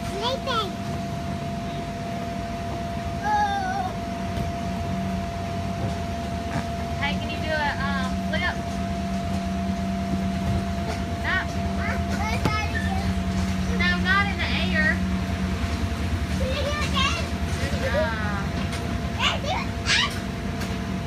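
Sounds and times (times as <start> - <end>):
air blower humming: 0.0 - 21.0
child squealing: 3.2 - 4.0, 19.2 - 20.2.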